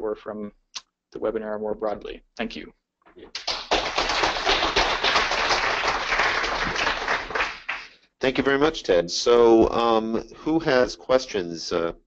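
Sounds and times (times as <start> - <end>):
audience applauding: 3.3 - 8.0.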